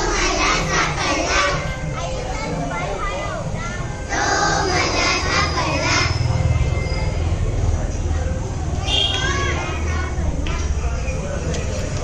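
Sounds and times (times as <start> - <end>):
children calling out together: 0.0 - 7.3, 8.8 - 10.8.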